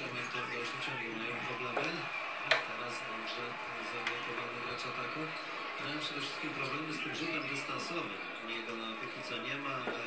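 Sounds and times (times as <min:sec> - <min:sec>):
man commentating on television: 0:00.0 - 0:10.0.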